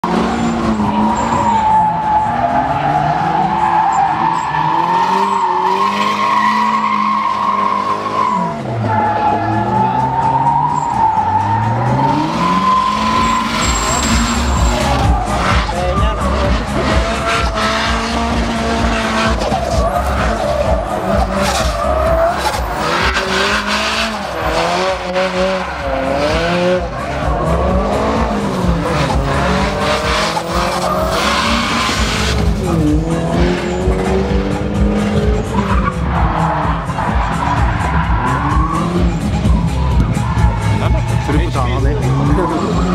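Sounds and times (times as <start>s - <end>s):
car engine revving hard: 0.0s - 3.7s, 11.0s - 42.9s
tyres squealing: 0.3s - 42.9s.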